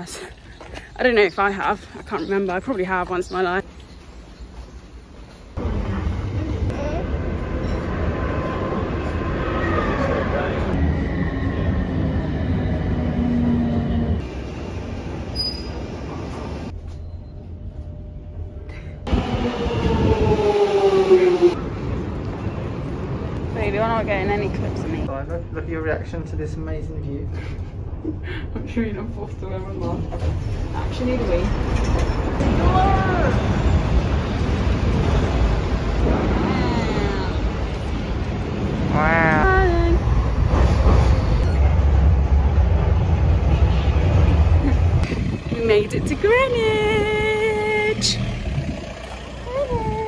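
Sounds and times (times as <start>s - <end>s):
train rumbling inside carriage: 4.5s - 50.0s
train running rumble: 28.6s - 50.0s.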